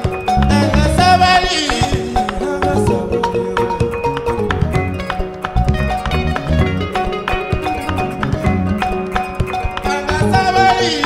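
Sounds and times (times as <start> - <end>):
band with plucked strings and percussion: 0.0 - 11.0.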